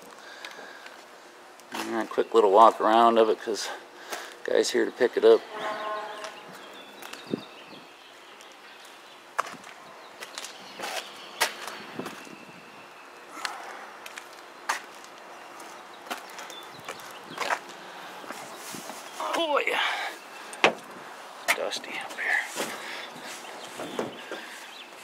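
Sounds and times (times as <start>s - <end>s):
footsteps: 13.4s - 19.4s, 20.6s - 25.0s.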